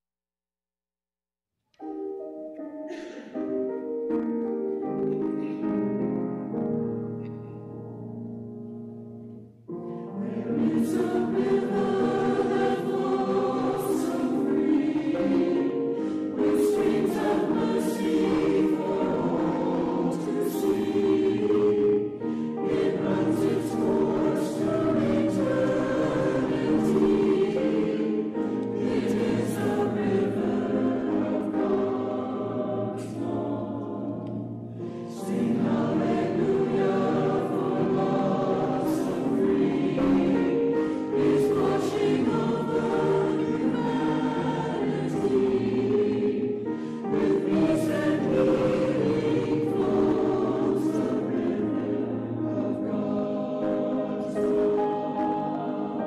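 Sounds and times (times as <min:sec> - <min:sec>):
choir singing: 0:09.7 - 0:56.0.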